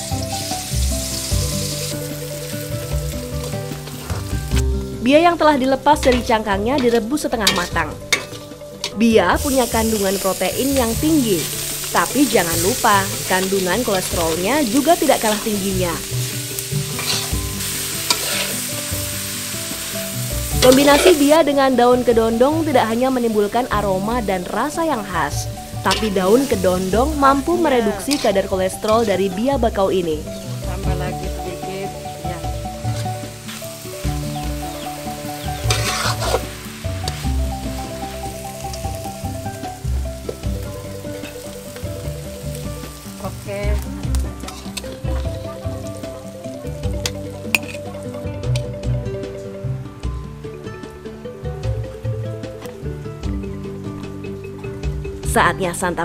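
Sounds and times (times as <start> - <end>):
snails sizzling in a wok: 0.0 - 49.1
background music: 0.0 - 56.0
spatula scraping wok: 6.0 - 9.0, 10.8 - 21.4, 25.5 - 29.4, 35.1 - 38.8, 44.4 - 45.0.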